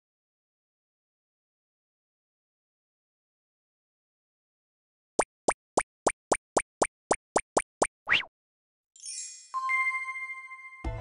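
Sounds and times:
cartoon plops: 5.2s - 8.3s.

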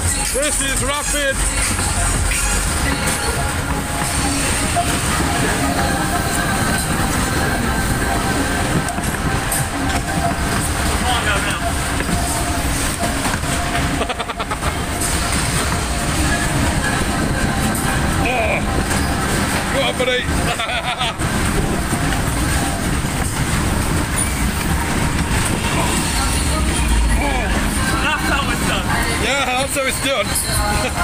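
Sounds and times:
loud fairground music: 0.0s - 31.0s
ride cars rumbling on track: 0.0s - 31.0s.

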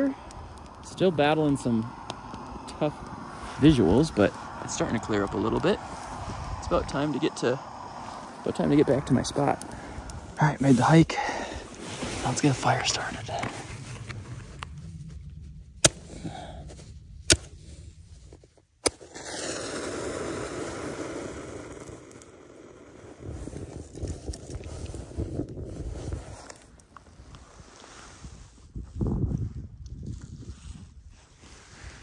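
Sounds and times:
steady rushing noise: 0.0s - 18.2s
fire rustling and crackling: 0.0s - 32.0s.

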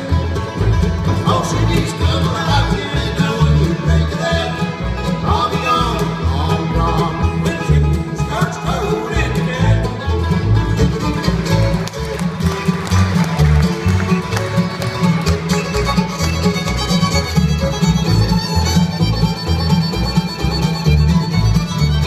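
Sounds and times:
banjo rolls: 0.0s - 22.0s
fiddle: 0.0s - 22.0s
strummed acoustic guitar: 0.0s - 22.0s
upright bass: 0.0s - 22.0s.

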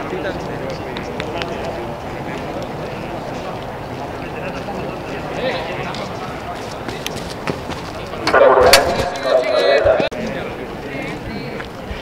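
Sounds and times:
people talking in background: 0.0s - 12.0s
nearby voice talking: 8.3s - 10.1s.

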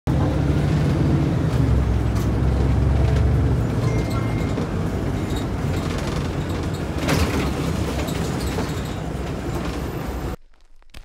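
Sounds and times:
bus engine and road noise: 0.1s - 10.4s.

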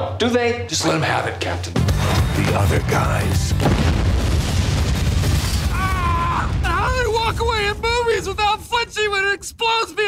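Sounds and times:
soundtrack music: 1.8s - 5.5s
deep explosion rumble: 3.5s - 8.7s.

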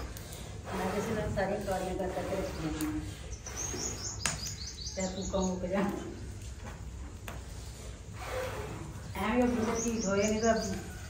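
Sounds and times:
small bird chirping: 2.5s - 5.9s, 9.1s - 11.0s.

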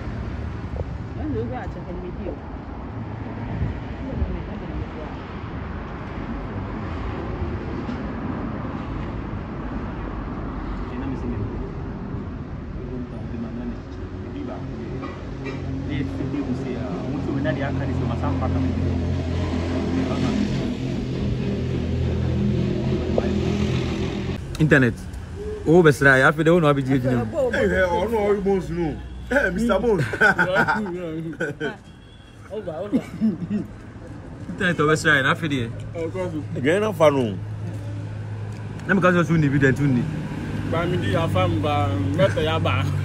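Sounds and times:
people talking: 24.5s - 31.8s, 34.5s - 37.4s, 40.7s - 43.0s.

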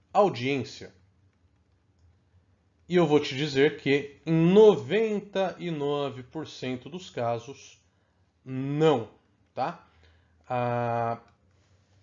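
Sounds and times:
low steady hum: 0.0s - 12.0s
man speaking: 0.1s - 1.0s, 2.9s - 7.8s, 8.4s - 9.9s, 10.5s - 11.3s.

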